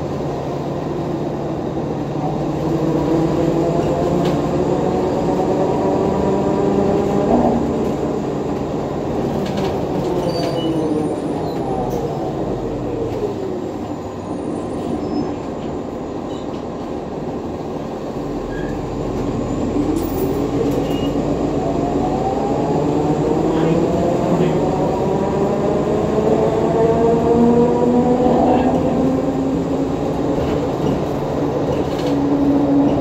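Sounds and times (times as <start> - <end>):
bus drivetrain whine: 0.0 - 33.0
engine and road rumble: 0.0 - 33.0.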